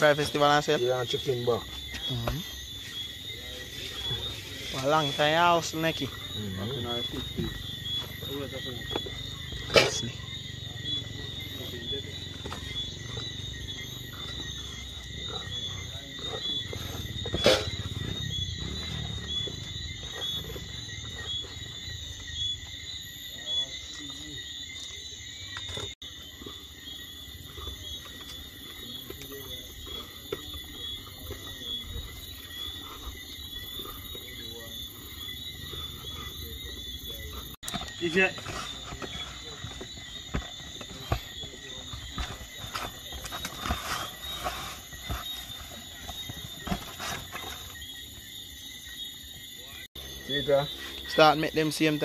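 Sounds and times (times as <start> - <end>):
night insects chorus: 0.0 - 52.0.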